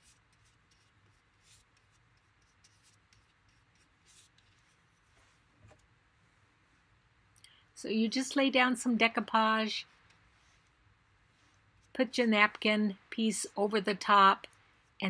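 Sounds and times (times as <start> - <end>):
soft scratching of paintbrush: 0.0 - 7.0, 9.8 - 12.0, 14.4 - 15.0.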